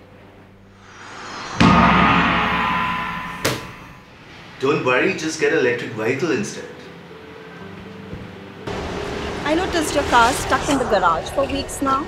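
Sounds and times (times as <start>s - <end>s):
rising swell: 0.7s - 4.1s
gong-like hit ringing: 0.8s - 4.3s.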